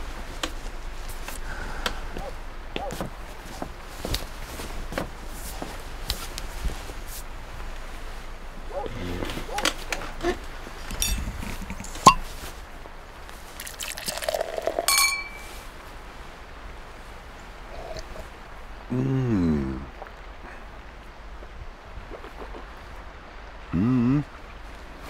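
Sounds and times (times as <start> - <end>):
bottle handling clicks: 10.9 - 12.2, 14.4 - 15.5
cork popping: 10.9 - 12.3, 13.6 - 15.5
wine pouring into glass: 11.0 - 12.2, 13.6 - 15.6
glass ringing: 12.0 - 12.3, 14.8 - 15.6.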